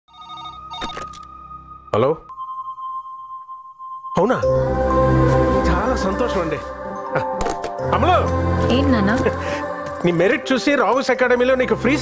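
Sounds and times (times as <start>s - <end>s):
telephone ringing: 0.1s - 1.5s.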